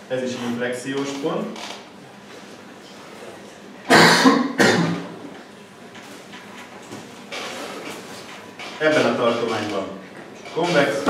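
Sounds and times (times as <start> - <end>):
man coughing harshly: 3.9 - 5.1.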